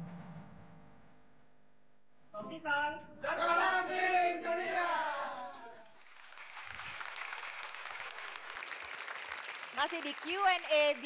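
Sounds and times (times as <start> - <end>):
audience applauding: 6.0 - 11.0.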